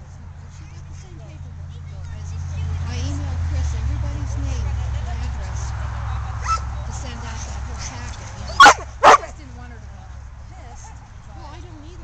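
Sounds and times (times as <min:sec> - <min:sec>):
dog barking: 0:08.5 - 0:09.3.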